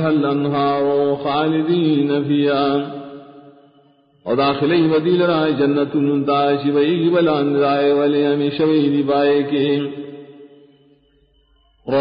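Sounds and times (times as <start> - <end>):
man chanting recitation: 0.0 - 3.3, 4.3 - 10.3.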